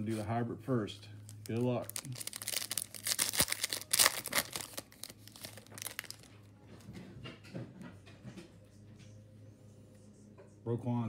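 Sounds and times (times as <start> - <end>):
cards rustling and scraping: 1.2 - 6.3
wrapper crackling as torn open: 1.3 - 6.3.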